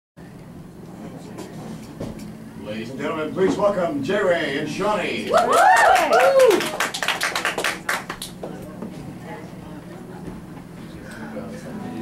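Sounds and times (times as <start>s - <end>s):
low room hum: 0.2s - 12.0s
faint background voices: 0.8s - 2.6s, 8.3s - 12.0s.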